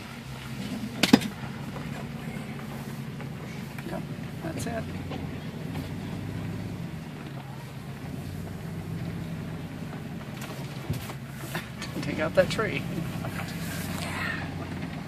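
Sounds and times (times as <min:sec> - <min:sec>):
knocks and rattles: 0:00.0 - 0:15.0
vehicle engine and road hum: 0:00.0 - 0:15.0.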